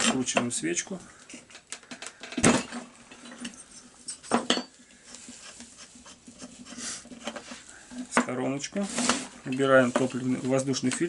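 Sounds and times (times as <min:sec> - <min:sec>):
hand tools clinking on workbench: 0:02.2 - 0:04.8.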